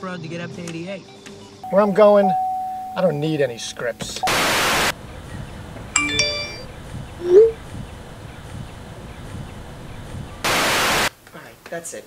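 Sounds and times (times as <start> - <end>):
phone text alert chime: 1.7 - 3.8, 6.0 - 6.6.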